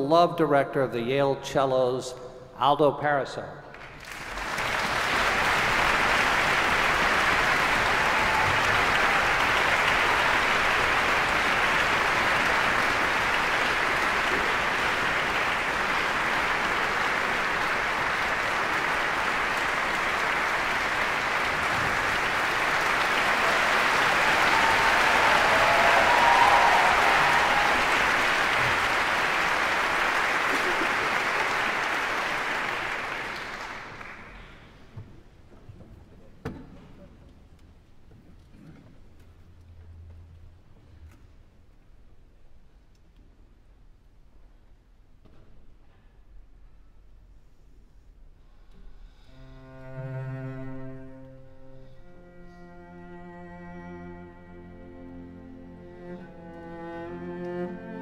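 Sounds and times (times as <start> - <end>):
audience applauding: 3.7 - 34.9.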